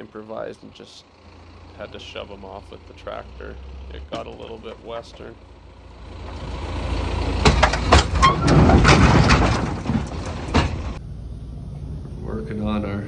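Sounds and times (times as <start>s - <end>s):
tractor engine under load: 0.0s - 11.0s
metallic bangs and scrapes: 6.1s - 11.0s.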